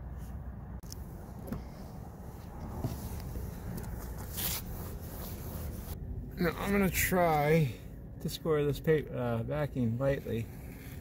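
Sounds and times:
low wind rumble: 0.0 - 11.0
sleeve rustling on microphone: 1.2 - 6.0.

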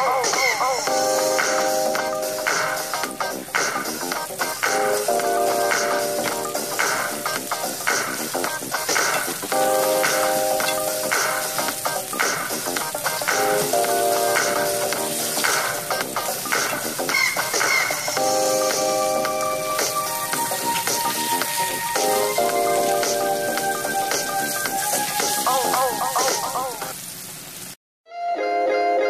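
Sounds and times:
meat sizzling in oil: 0.2 - 27.8
background music with sustained notes: 9.2 - 25.7.

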